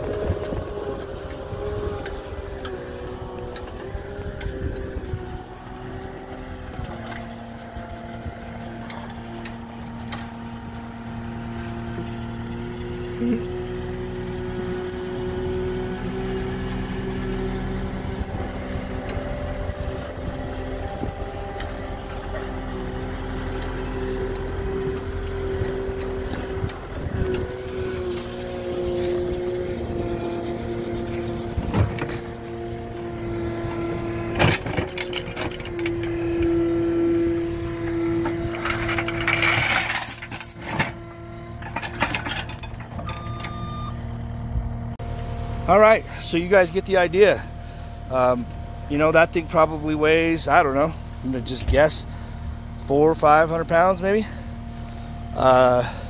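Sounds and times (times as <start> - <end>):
diesel engine running: 0.0 - 56.0
plow clattering onto ground: 34.3 - 36.6.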